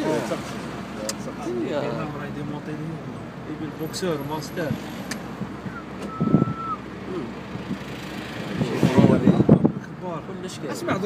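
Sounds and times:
men's voices: 0:00.0 - 0:06.0, 0:06.9 - 0:11.0
outdoor background noise: 0:00.0 - 0:11.0.

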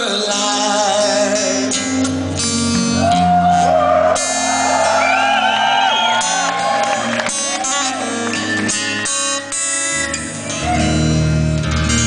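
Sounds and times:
acoustic guitar: 0:00.0 - 0:12.0
live rock band playing: 0:00.0 - 0:12.0.

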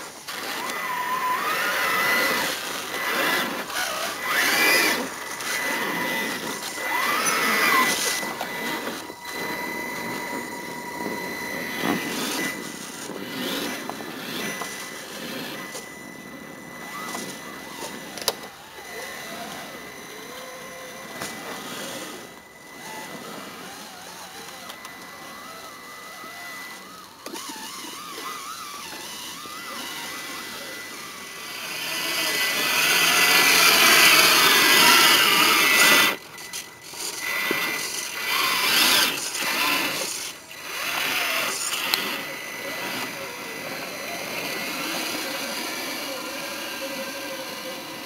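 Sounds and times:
electric motor and gearbox whine: 0:00.0 - 0:48.0.

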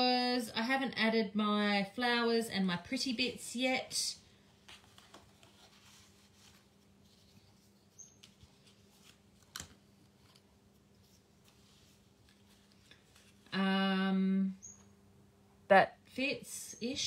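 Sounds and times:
faint steady hum: 0:00.0 - 0:17.0
paper handling: 0:04.6 - 0:13.6.

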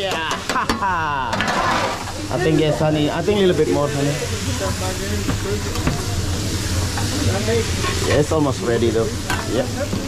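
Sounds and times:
rice sizzling on a griddle: 0:00.0 - 0:10.0.

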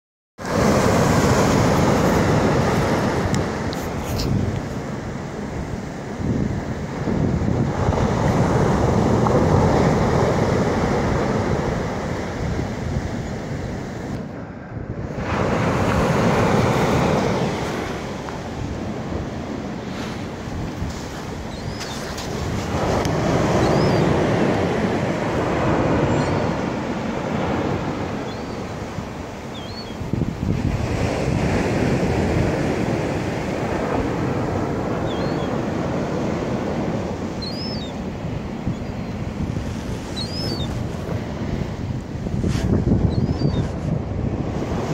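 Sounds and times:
ocean surf breaking: 0:00.4 - 0:44.9.

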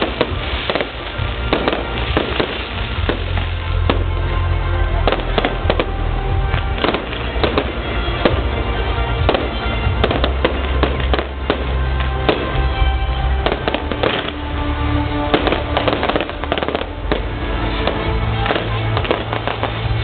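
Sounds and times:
fireworks bangs: 0:00.0 - 0:20.0
music with steady bass line: 0:00.0 - 0:20.0.

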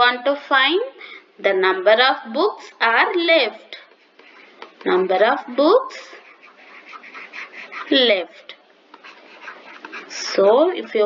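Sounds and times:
person speaking: 0:01.4 - 0:11.0.

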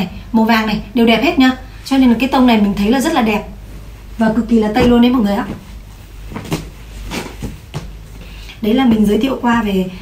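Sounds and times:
cloth rustling: 0:03.6 - 0:09.2.

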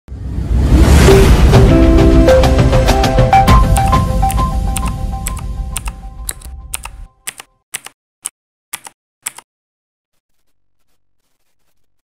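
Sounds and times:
intro music: 0:00.8 - 0:07.1
keyboard typing clicks: 0:03.7 - 0:08.0, 0:08.7 - 0:09.5.

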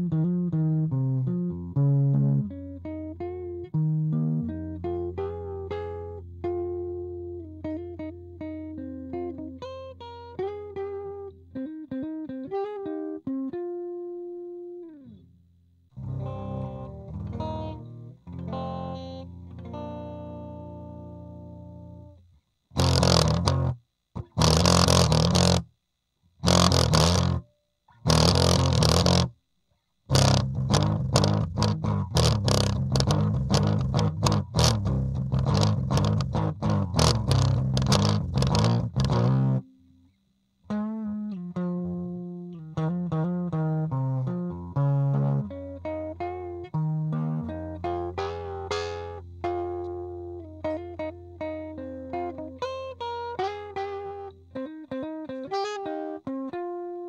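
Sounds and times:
distorted electric guitar strumming: 0:00.0 - 0:15.2, 0:16.0 - 0:22.2, 0:22.8 - 0:25.7, 0:26.4 - 0:29.3, 0:30.1 - 0:39.8, 0:40.7 - 0:57.0
electric guitar single-note line: 0:00.0 - 0:15.2, 0:16.0 - 0:22.2, 0:22.8 - 0:25.6, 0:26.4 - 0:27.4, 0:28.0 - 0:29.3, 0:30.1 - 0:40.0, 0:40.7 - 0:57.0.

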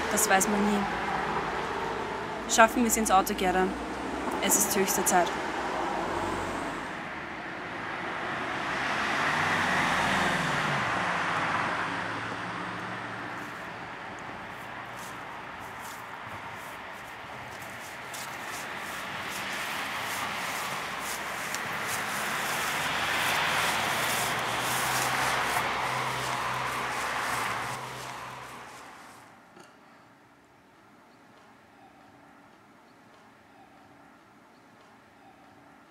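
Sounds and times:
passing vehicles: 0:00.0 - 0:29.7.

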